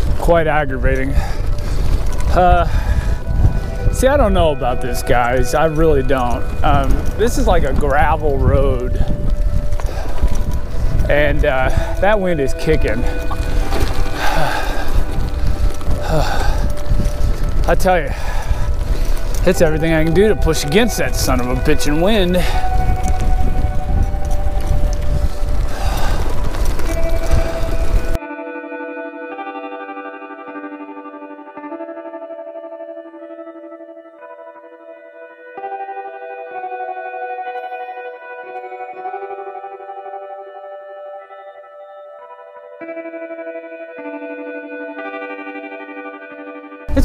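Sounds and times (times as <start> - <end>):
bicycle tyres on gravel: 0.0 - 28.2
wind buffeting microphone: 0.0 - 28.2
slow ambient guitar music: 0.0 - 47.0.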